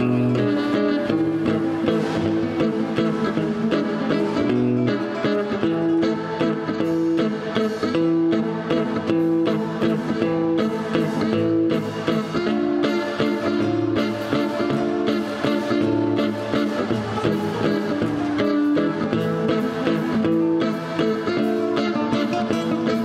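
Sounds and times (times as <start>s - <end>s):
acoustic guitars playing: 0.0s - 23.0s.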